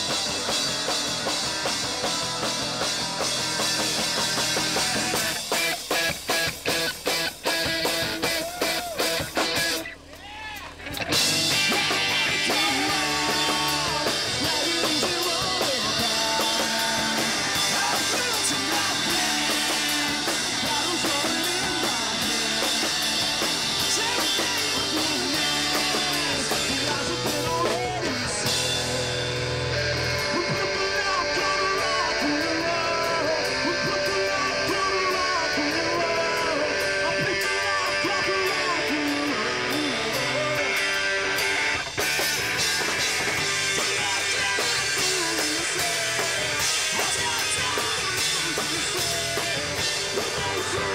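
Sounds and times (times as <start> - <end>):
rock music with guitar and drums: 0.0 - 50.9.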